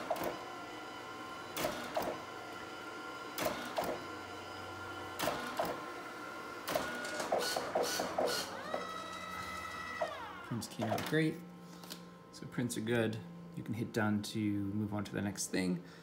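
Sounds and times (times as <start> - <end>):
printer motor whine: 0.0 - 14.9.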